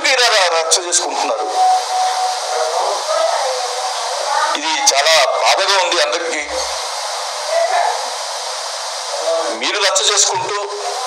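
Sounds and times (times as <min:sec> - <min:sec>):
person talking: 0:00.0 - 0:06.8
steady hiss: 0:00.0 - 0:11.0.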